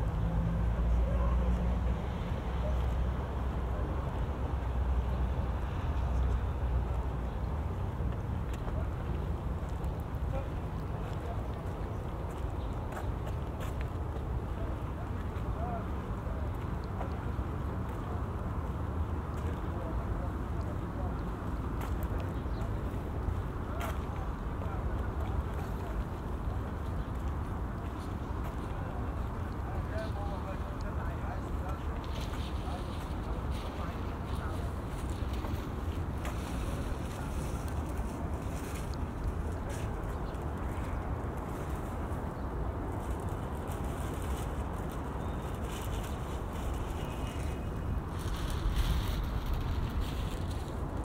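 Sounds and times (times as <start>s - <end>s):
steady low rumble: 0.0s - 51.0s
wind buffeting microphone: 22.3s - 51.0s.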